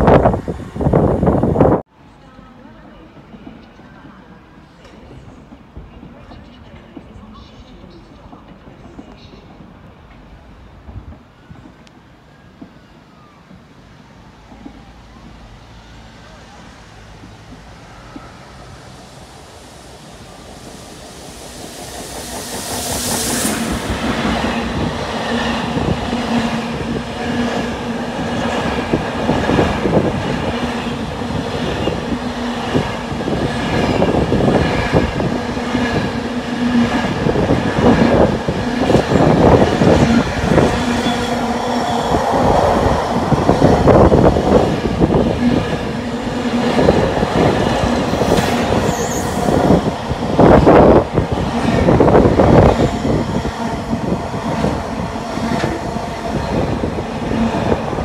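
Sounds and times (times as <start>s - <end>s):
diesel locomotive engine passing: 0.0s - 58.0s
train wheels clickety-clack: 46.6s - 58.0s.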